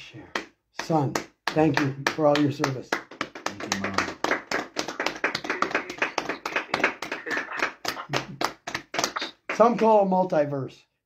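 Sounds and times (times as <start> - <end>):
hand clapping: 0.3 - 10.0
faint voice: 3.5 - 4.2.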